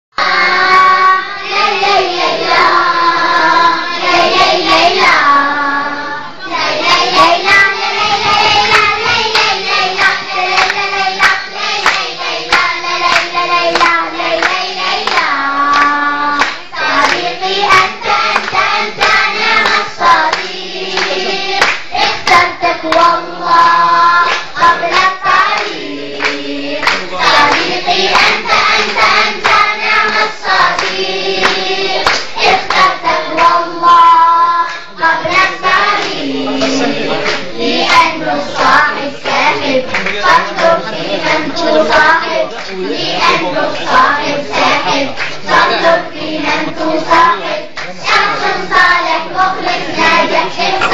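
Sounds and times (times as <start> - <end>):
children's choir singing: 0.1 - 50.9
rhythmic hand clapping: 6.6 - 50.9.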